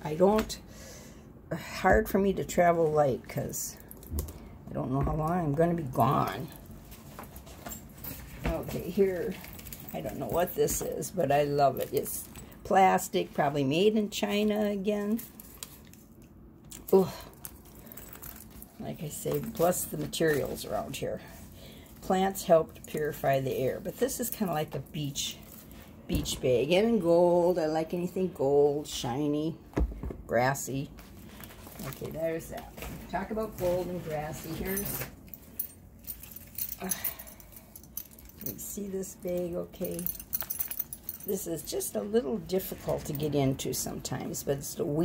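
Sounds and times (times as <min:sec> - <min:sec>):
bag rustling: 0:17.3 - 0:22.1, 0:30.9 - 0:43.3.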